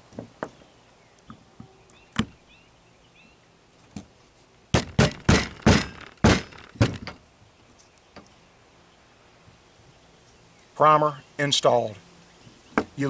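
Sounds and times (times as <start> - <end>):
sharp hard knocks on wood: 4.7 - 7.2.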